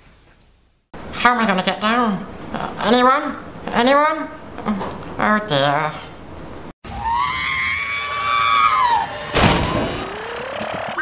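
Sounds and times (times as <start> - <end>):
loud crash: 8.8 - 10.6.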